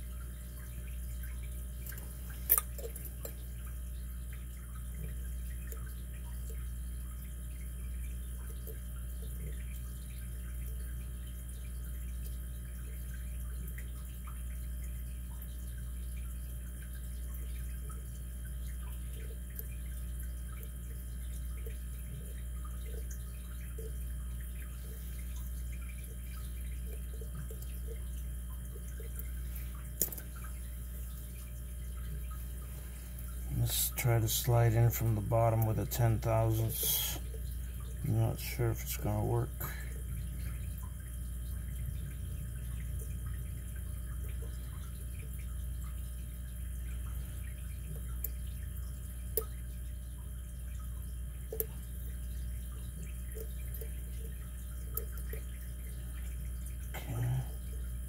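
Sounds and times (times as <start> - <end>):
steady low hum: 0.0 - 58.0.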